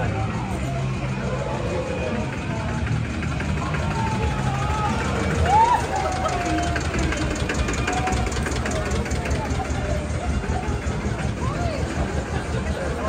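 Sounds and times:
crowd voices: 0.0s - 13.0s
tractor engine knocking: 0.0s - 13.0s.

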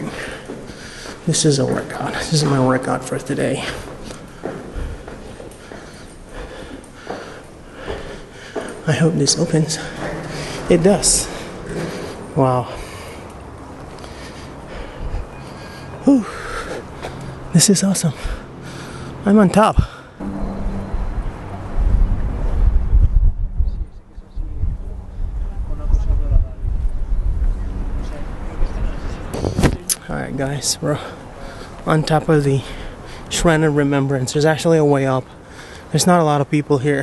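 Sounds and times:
man breathing hard: 0.0s - 1.3s, 3.6s - 8.9s, 9.7s - 17.5s, 18.1s - 19.2s, 30.9s - 31.8s, 32.6s - 33.3s, 35.3s - 36.0s
footsteps on stairs: 0.0s - 17.2s
wind buffeting microphone: 14.7s - 15.4s, 19.8s - 29.9s.

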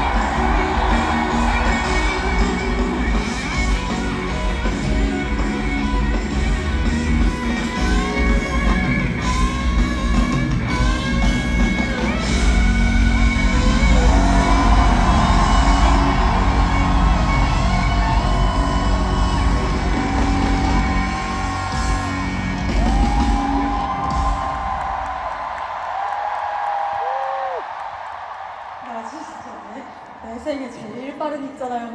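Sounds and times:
live rock band playing: 0.0s - 24.8s
high held vocal whoops: 25.9s - 27.8s.

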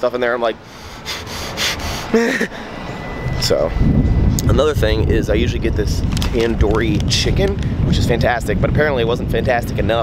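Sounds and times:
street traffic rumble: 0.0s - 10.0s
man exhaling: 0.8s - 2.8s.

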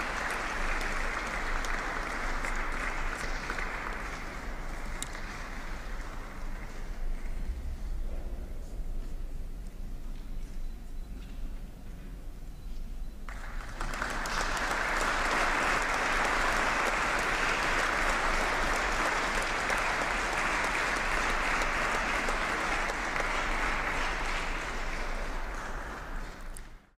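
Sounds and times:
audience applauding: 0.0s - 7.2s, 13.3s - 26.9s.

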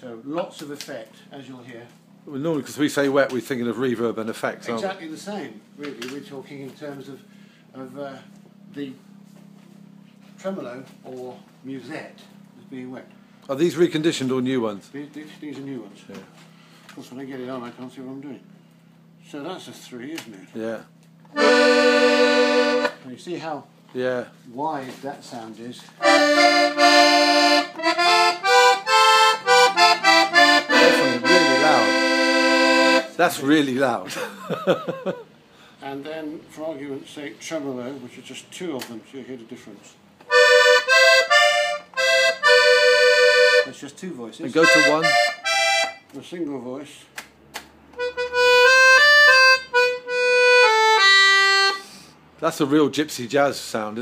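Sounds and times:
accordion chords: 21.3s - 23.1s, 26.0s - 33.6s, 40.3s - 46.1s, 47.9s - 52.1s.

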